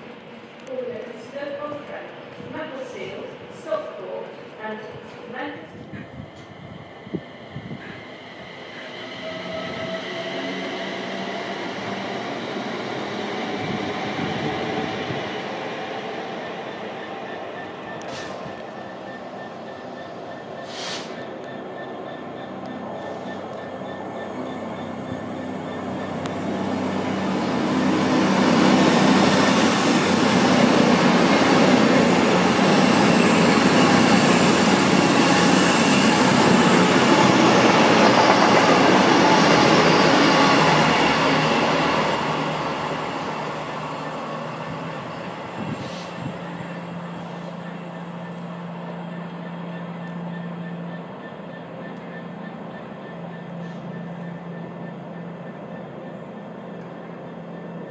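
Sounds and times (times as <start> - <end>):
diesel train passing at speed: 0.0 - 57.9.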